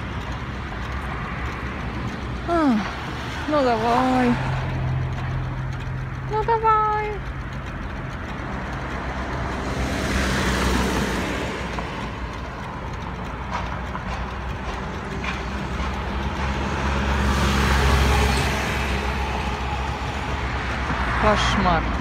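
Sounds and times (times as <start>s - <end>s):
low engine hum: 0.0s - 22.0s
vehicles passing: 0.0s - 22.0s.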